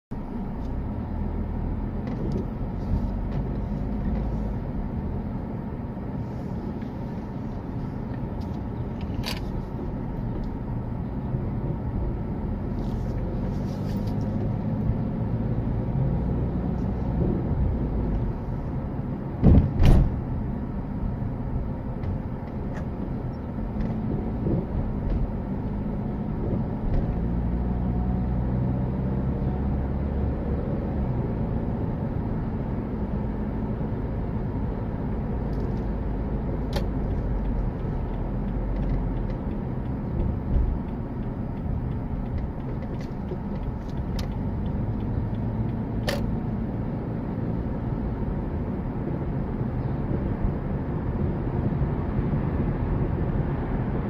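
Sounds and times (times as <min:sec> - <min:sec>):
car engine and road rumble: 0:00.1 - 0:54.0.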